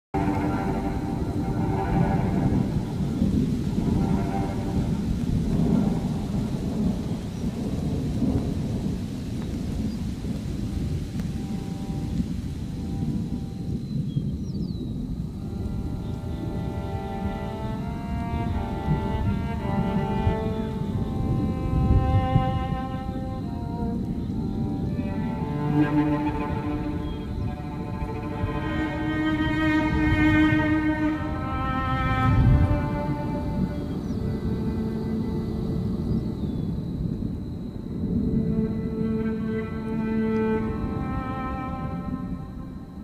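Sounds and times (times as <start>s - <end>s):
rain: 0.1s - 43.0s
low rumble of thunder: 0.2s - 43.0s
slow ambient music: 0.2s - 43.0s.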